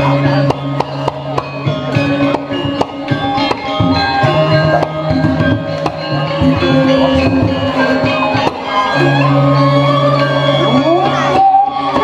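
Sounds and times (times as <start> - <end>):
metallophone ringing tones: 0.0 - 12.0.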